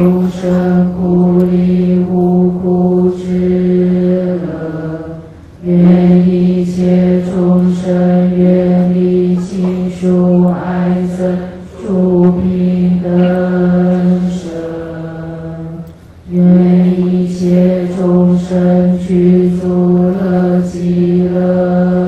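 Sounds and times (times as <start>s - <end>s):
low prayer chanting: 0.0s - 22.0s.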